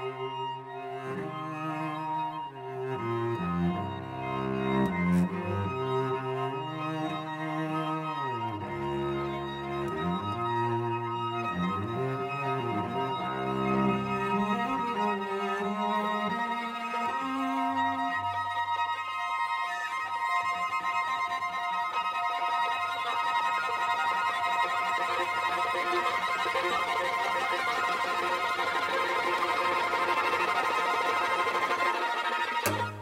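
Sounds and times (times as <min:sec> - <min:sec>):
string quartet playing: 0:00.0 - 0:33.0.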